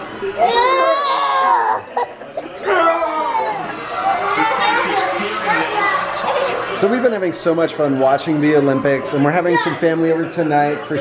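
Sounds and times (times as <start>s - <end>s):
children and man playing excitedly: 2.6s - 6.8s, 9.1s - 10.5s.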